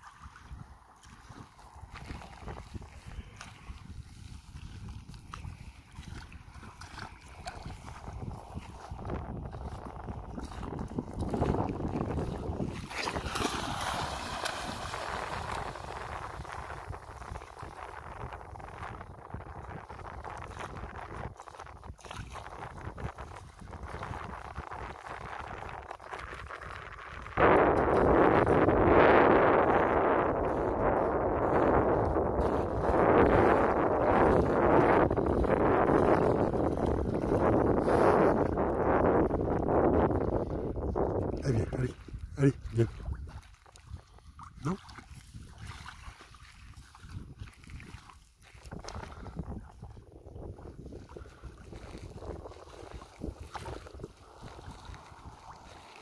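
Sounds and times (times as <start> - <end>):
water splashing: 0.0 - 19.0, 19.6 - 56.0
wind on microphone: 0.0 - 56.0.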